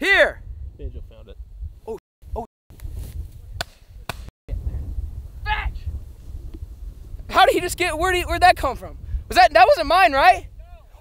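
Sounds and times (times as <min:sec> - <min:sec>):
wind rumbling on microphone: 0:00.0 - 0:11.0
sharp cracks: 0:03.6 - 0:04.3.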